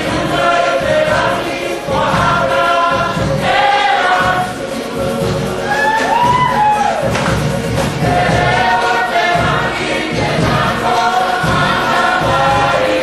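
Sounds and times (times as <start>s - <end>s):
group singing in chorus: 0.0s - 13.0s.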